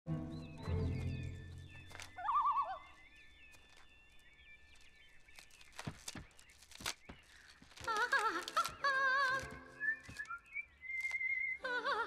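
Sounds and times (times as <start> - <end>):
faint high bird chirping: 0.1 - 12.0
bird warbling call: 1.0 - 4.3.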